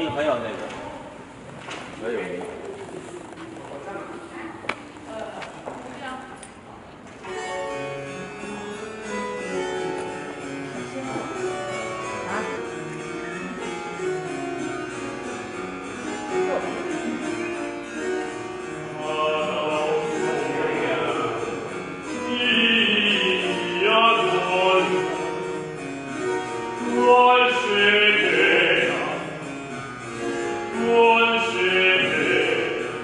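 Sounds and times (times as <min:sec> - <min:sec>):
harpsichord and strings playing: 0:07.2 - 0:33.0.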